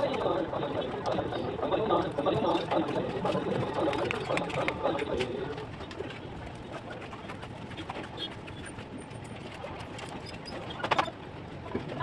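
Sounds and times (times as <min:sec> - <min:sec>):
pigeons cooing: 0:00.0 - 0:05.6.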